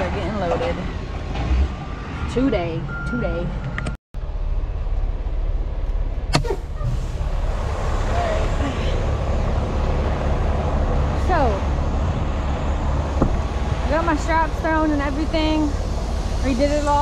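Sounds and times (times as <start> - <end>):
diesel truck engine idling: 4.2 - 17.0.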